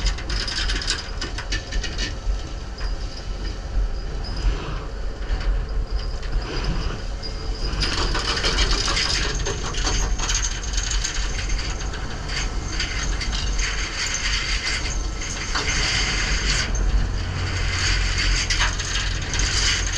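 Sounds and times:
fast rattling and clicking: 0:00.0 - 0:02.2, 0:07.6 - 0:19.9
low machinery rumble: 0:00.0 - 0:19.9.

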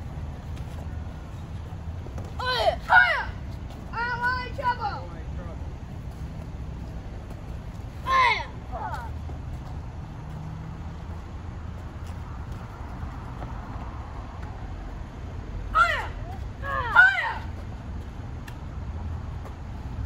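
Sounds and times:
sharp karate shouts: 0:02.4 - 0:03.4, 0:15.7 - 0:17.5.

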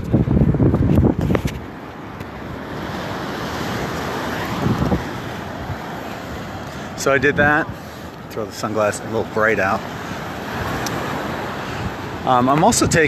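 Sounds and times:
surf washing up beach: 0:00.0 - 0:13.0
wind buffeting microphone: 0:00.0 - 0:13.0.

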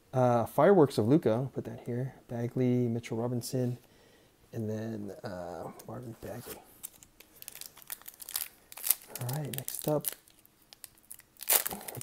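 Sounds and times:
foil wrapper crinkling: 0:06.8 - 0:12.0
foil wrapper tearing: 0:06.8 - 0:12.0.

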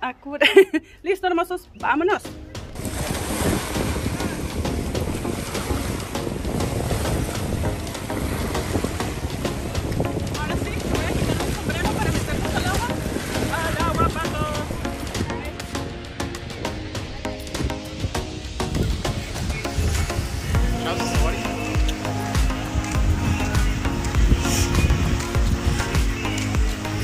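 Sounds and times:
shallow sea water washing: 0:02.6 - 0:15.9
wind rumbling on microphone: 0:02.6 - 0:27.0
people's voices: 0:10.2 - 0:15.8, 0:19.2 - 0:26.9.

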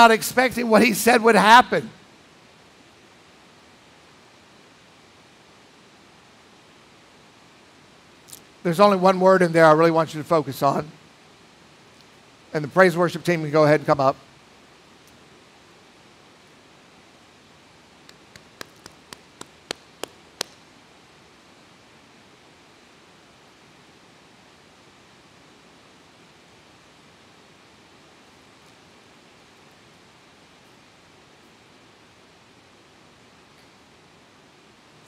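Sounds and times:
room tone hiss: 0:00.0 - 0:35.0.

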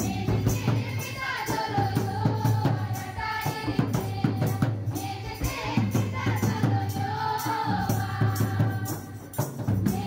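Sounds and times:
tambourines jingling: 0:00.0 - 0:10.0
women and girls singing: 0:00.0 - 0:10.0.

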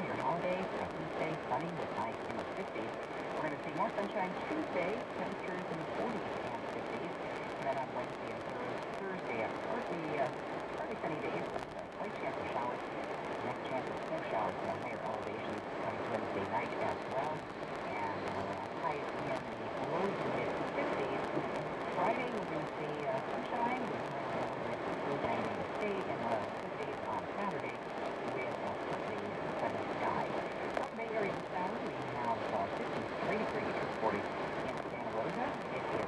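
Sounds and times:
radio voice: 0:00.0 - 0:36.0.

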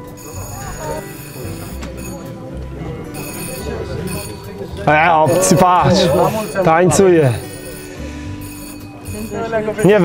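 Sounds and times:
electric bell ringing: 0:00.0 - 0:10.0
murmur of people talking: 0:00.0 - 0:10.0.

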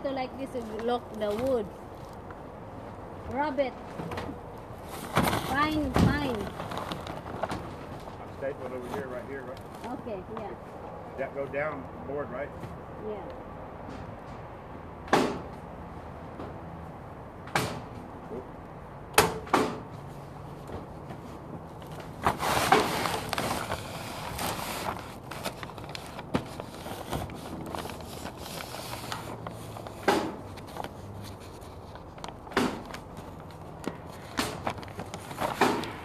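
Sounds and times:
tarp rustling and scraping: 0:04.8 - 0:10.2, 0:21.2 - 0:36.0.

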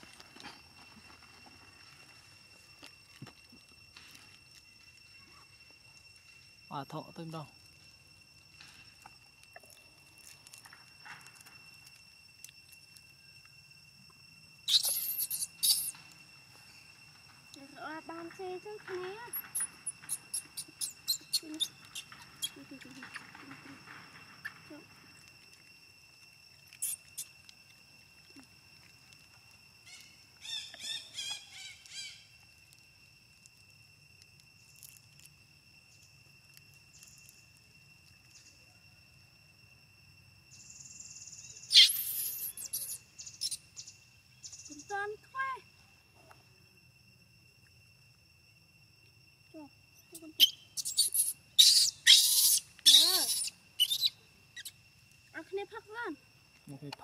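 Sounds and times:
insect drone: 0:00.0 - 0:57.0
baby monkey squeaky calls: 0:14.7 - 0:16.0, 0:19.3 - 0:23.4, 0:26.8 - 0:27.3, 0:41.7 - 0:43.7, 0:50.2 - 0:54.8
wavering pitched cry: 0:14.7 - 0:16.0, 0:41.7 - 0:43.6, 0:50.3 - 0:54.8
faint squeaks: 0:14.7 - 0:25.6.

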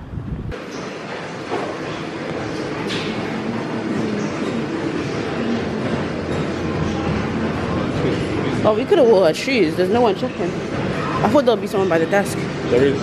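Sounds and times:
treadmills and exercise machines running: 0:00.0 - 0:13.0.

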